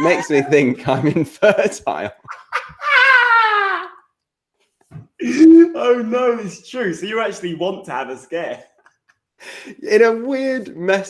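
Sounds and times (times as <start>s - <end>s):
man howling with laughter: 0.0s - 0.8s, 2.3s - 4.0s.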